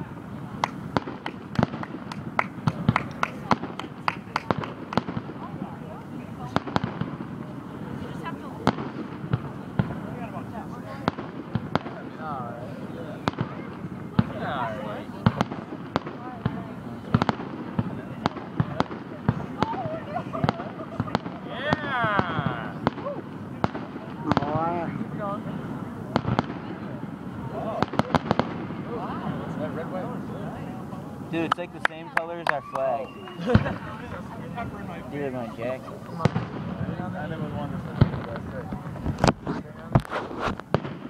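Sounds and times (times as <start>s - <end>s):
firework shells bursting: 0.6s - 5.5s, 37.8s - 41.0s.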